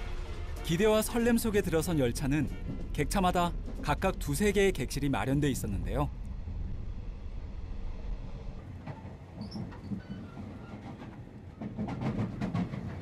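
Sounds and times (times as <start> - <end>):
train carriage rumble: 0.0 - 13.0.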